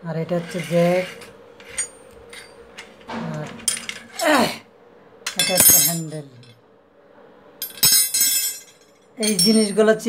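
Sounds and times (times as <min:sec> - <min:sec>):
steel wrenches clinking: 0:00.4 - 0:04.5, 0:05.3 - 0:06.5, 0:07.6 - 0:10.0.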